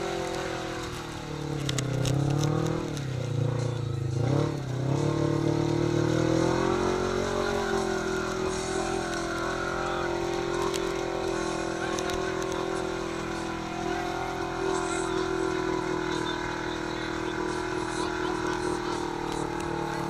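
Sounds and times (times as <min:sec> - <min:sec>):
engine revving under load: 0:00.0 - 0:20.0.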